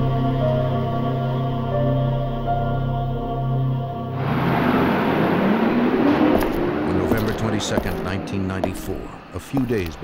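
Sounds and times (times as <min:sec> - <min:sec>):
music: 0:00.0 - 0:04.6
traffic noise: 0:04.1 - 0:10.0
people talking: 0:06.9 - 0:10.0.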